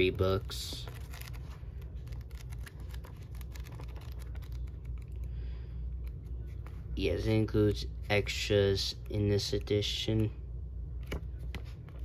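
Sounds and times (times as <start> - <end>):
low steady hum: 0.0 - 12.0
book pages flicking: 0.9 - 5.2.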